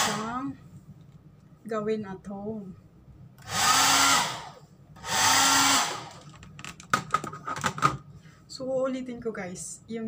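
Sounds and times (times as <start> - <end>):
hair dryer blowing: 3.4 - 6.2.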